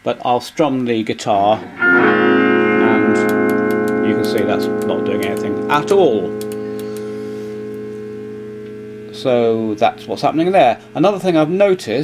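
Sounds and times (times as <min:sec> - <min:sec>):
electric guitar chord ringing: 0:01.5 - 0:12.0.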